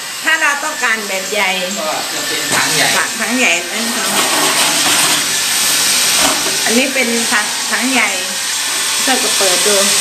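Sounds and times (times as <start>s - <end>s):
water filling machine rushing hiss: 0.0s - 10.0s.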